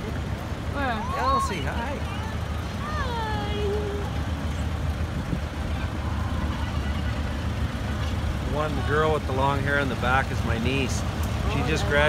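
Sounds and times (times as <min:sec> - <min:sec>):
vehicles rumbling past: 0:00.0 - 0:12.0.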